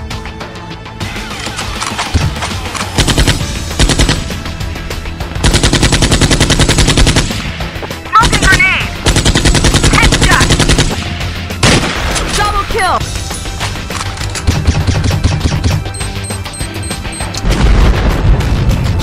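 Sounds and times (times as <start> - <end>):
machine-gun rapid-fire bursts: 1.3 - 4.4, 5.4 - 7.5, 8.2 - 12.1.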